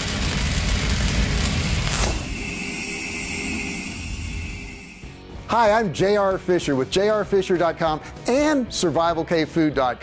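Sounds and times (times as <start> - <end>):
loud rumbling rush: 0.0 - 5.0
thin steady high tone: 2.2 - 5.2.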